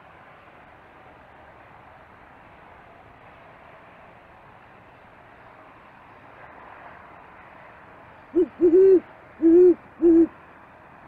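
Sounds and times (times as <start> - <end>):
owl hooting: 8.4 - 10.3.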